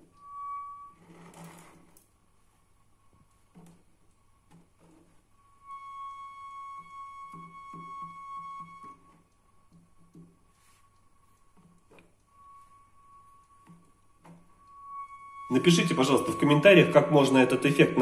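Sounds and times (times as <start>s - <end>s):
water pipe whistling tone: 0.0s - 2.1s, 4.7s - 18.0s.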